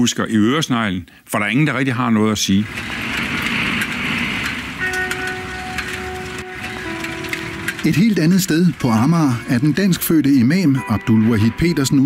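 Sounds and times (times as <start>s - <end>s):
street traffic noise: 2.6s - 11.7s
soft music with held notes: 4.7s - 12.0s.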